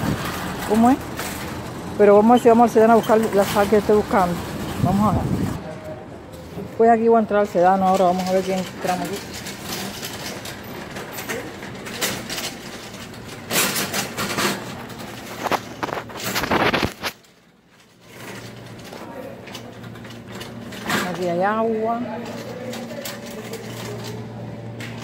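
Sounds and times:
plastic basket rustling and clicks: 0:07.8 - 0:21.4.

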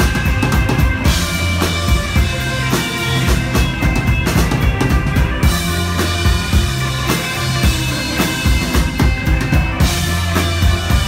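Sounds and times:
bass notes: 0:00.0 - 0:11.0
drum beat: 0:00.0 - 0:11.0
electric guitar: 0:00.0 - 0:11.0
live rock band: 0:00.0 - 0:11.0.

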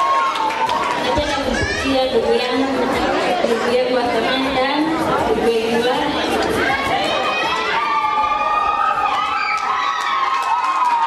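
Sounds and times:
voices chattering: 0:01.0 - 0:08.4
woman talking into a microphone: 0:01.1 - 0:07.1.

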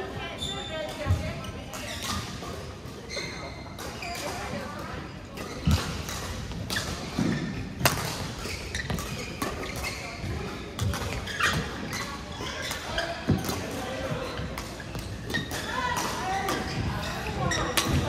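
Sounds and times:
rackets striking shuttlecock: 0:05.6 - 0:09.9.

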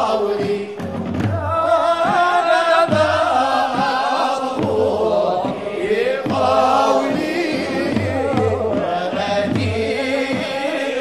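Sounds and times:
vocal ensemble chanting: 0:00.0 - 0:11.0.

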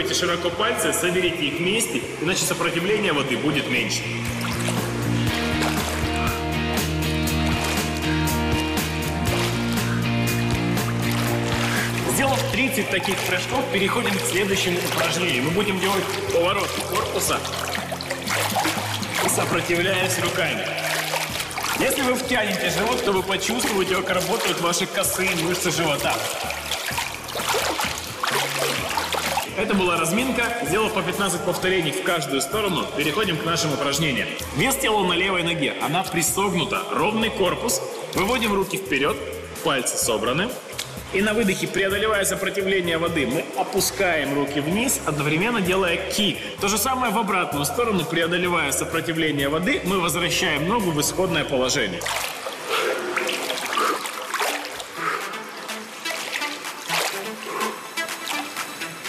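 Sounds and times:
low background music: 0:00.0 - 0:59.0
pool water splashing: 0:00.0 - 0:59.0.

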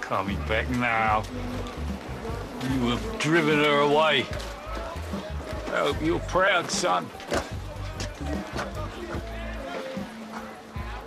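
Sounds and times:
background music with low bass: 0:00.0 - 0:11.0.

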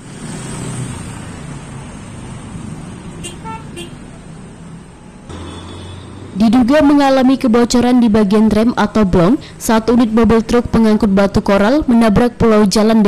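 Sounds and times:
vehicles passing: 0:00.0 - 0:13.0.

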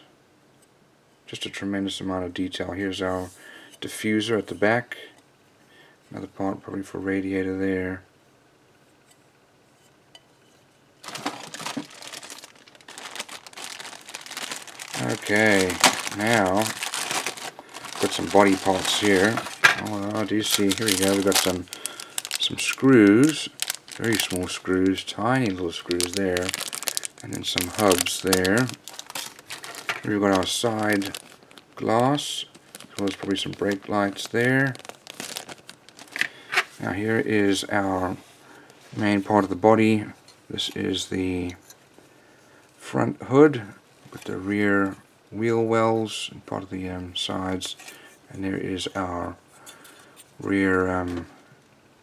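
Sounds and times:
plastic bag crinkling: 0:11.0 - 0:37.6.

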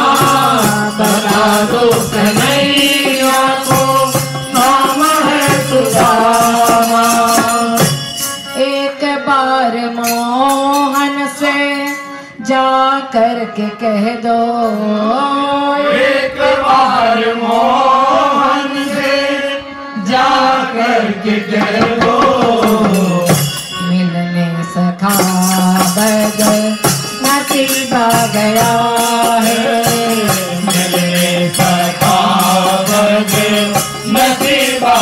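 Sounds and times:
light percussion beat: 0:00.0 - 0:08.7, 0:20.2 - 0:23.9, 0:25.0 - 0:35.0
people singing devotional song: 0:00.0 - 0:35.0.

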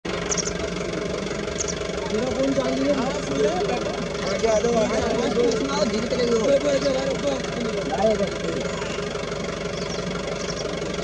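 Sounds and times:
steady engine hum: 0:00.0 - 0:11.0.

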